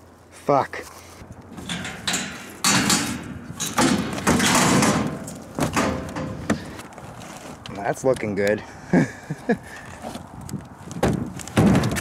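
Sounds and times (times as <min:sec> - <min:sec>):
junk scraping and clattering: 0:01.2 - 0:07.7, 0:10.9 - 0:12.0.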